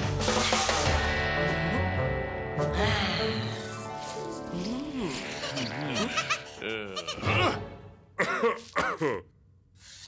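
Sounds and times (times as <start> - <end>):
music: 0.0 - 8.2.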